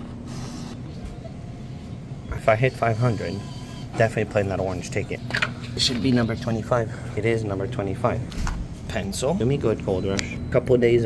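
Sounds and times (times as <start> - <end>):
bill acceptor motor whir: 2.4 - 10.8.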